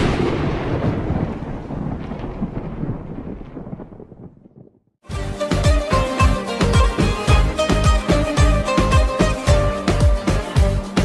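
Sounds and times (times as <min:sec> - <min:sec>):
rumbling boom: 0:00.0 - 0:04.8.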